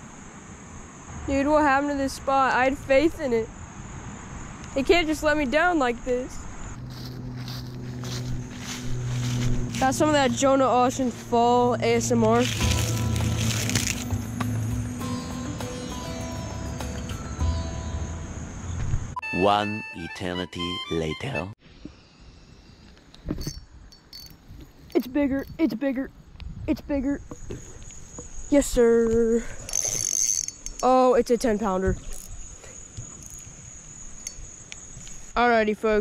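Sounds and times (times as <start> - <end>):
steady low hum: 0.0 - 15.2
insects chirping: 0.0 - 19.2, 21.6 - 36.0
handling noise rustle: 6.8 - 10.1, 12.3 - 14.3
dry leaves crunching: 6.8 - 11.4, 12.0 - 14.5.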